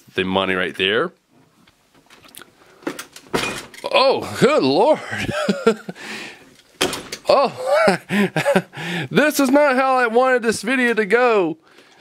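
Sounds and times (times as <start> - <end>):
person coughing: 7.3 - 8.7.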